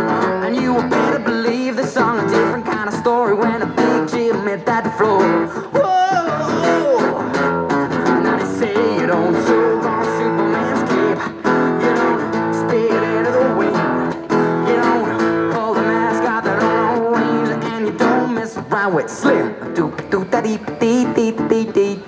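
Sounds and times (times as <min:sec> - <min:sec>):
acoustic guitar strumming: 0:00.0 - 0:22.0
young man singing: 0:00.0 - 0:22.0.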